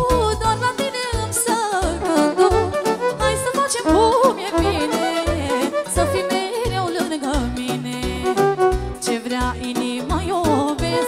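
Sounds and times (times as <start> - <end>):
band backing with bass beat: 0.0 - 11.0
woman singing into a microphone: 0.0 - 11.0.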